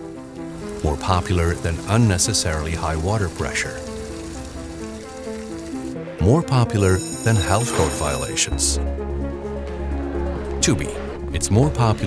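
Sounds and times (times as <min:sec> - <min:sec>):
drinking fountain water spraying: 0:00.0 - 0:06.0
soft background music: 0:00.0 - 0:12.0.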